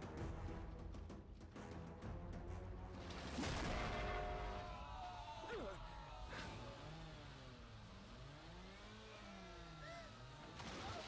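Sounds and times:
faint jeep engine revving: 5.8 - 10.8.

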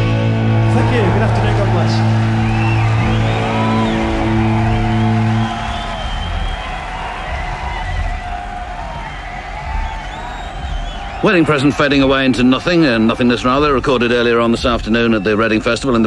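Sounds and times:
distant band playing: 0.0 - 15.8
crowd noise with whoops: 0.1 - 13.1.

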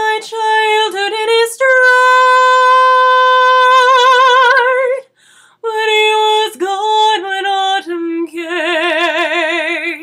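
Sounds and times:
woman singing a cappella: 0.0 - 10.0.

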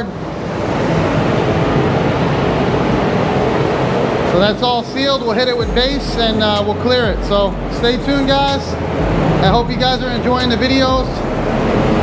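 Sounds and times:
ventilation air rushing: 0.0 - 12.0.

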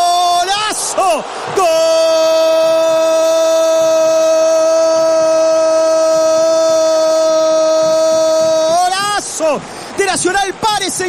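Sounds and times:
commentator shouting goal cry: 0.0 - 11.0.

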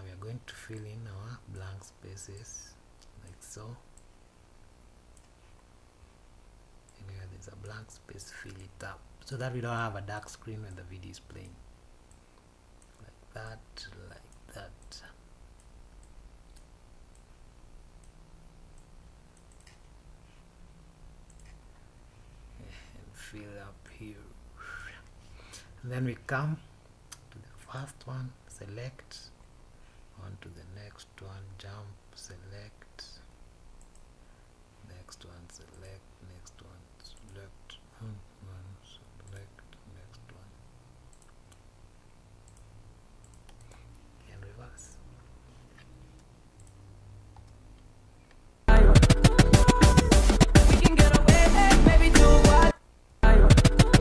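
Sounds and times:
low steady hum: 0.0 - 54.0
computer mouse clicks: 15.6 - 17.3, 18.8 - 19.9, 21.3 - 21.6, 33.8 - 34.1, 41.1 - 41.7, 42.4 - 44.0, 45.8 - 48.4.

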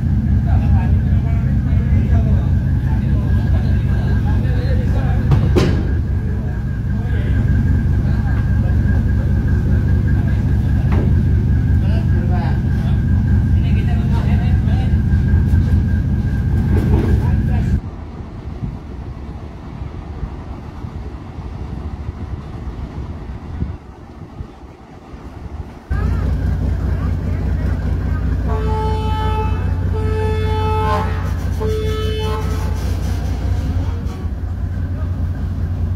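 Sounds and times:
ferry engines rumbling: 0.0 - 35.9
ship's horn blasts: 28.2 - 34.3.

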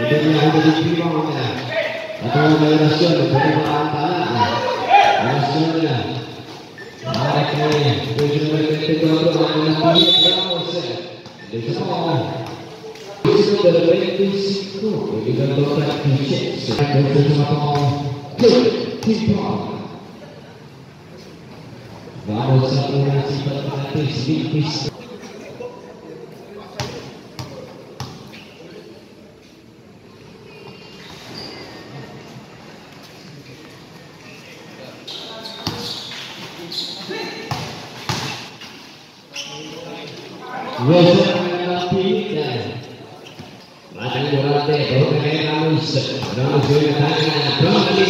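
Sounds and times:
man talking: 0.0 - 20.0, 22.2 - 25.1, 39.9 - 42.9, 43.9 - 48.0
crowd voices: 0.0 - 48.0.

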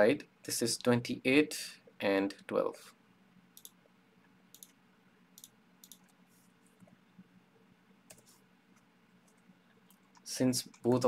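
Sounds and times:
faint room hum: 0.0 - 11.0
computer mouse clicks: 3.6 - 3.8, 4.5 - 4.8, 5.4 - 7.0, 8.1 - 11.0.

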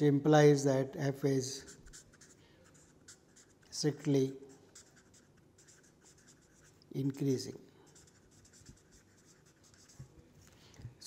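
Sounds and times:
marker pen scratching on paper: 1.5 - 10.6.

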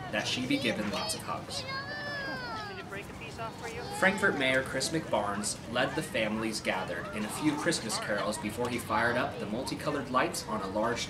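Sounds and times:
children chattering: 0.0 - 11.0
child squealing: 1.6 - 2.8.

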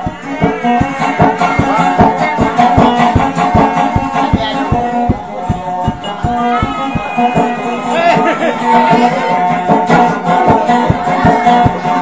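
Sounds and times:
plucked guitar melody: 0.0 - 12.0
steady low beat: 0.0 - 12.0.

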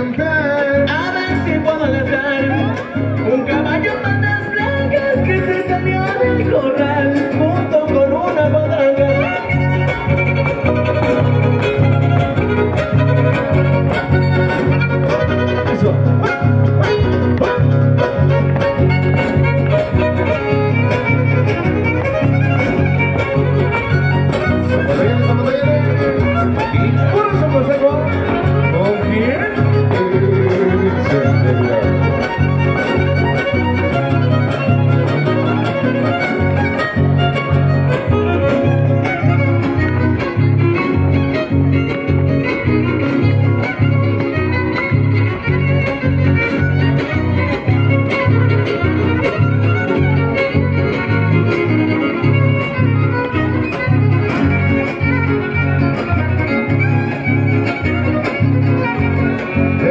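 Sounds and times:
guitar: 0.0 - 59.9
violin: 0.0 - 59.9.

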